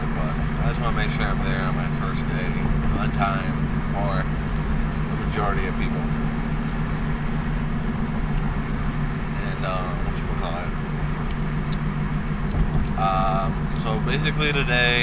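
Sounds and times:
car cabin road rumble: 0:00.0 - 0:15.0.

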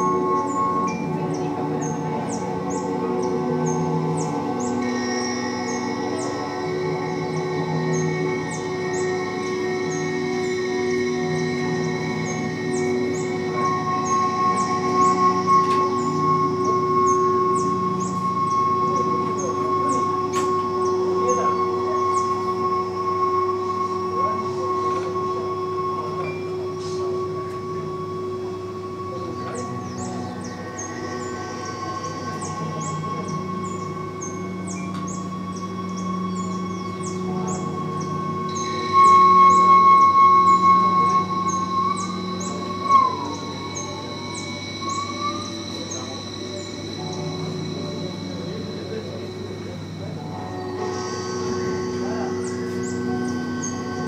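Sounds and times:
high tone: 0:00.0 - 0:54.0
rapid high chirps: 0:29.6 - 0:54.0.

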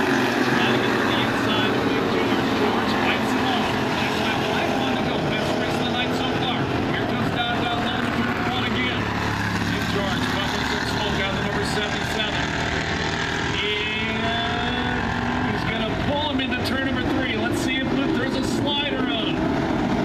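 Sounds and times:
race car engines droning: 0:00.0 - 0:20.0.

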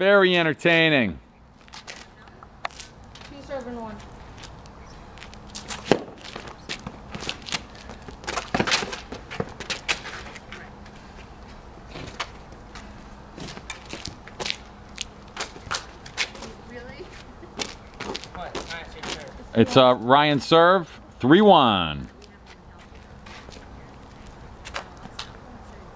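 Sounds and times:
footsteps on pavement: 0:01.4 - 0:25.9
tennis ball bounces: 0:05.7 - 0:10.0.

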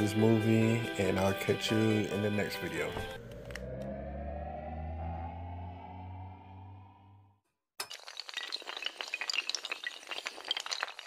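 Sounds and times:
sustained synth chord: 0:03.0 - 0:07.3
blocks toppling clatter: 0:07.8 - 0:11.0.

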